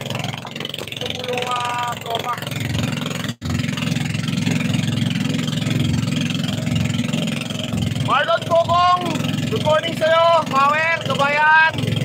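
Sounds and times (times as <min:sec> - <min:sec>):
boat engine rumbling: 0:00.0 - 0:12.0.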